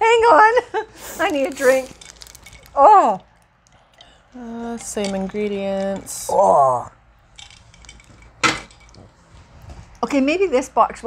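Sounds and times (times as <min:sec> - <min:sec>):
faint handling noise: 0:01.0 - 0:06.3.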